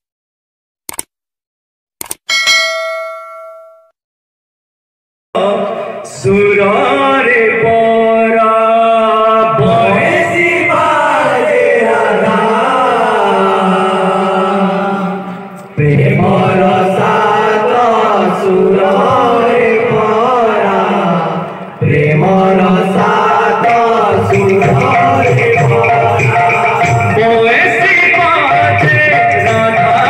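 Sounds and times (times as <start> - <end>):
quick clicks: 0.9 - 1.1, 2.0 - 2.3
bright bell ding: 2.3 - 4.0
men chanting together: 6.6 - 27.3.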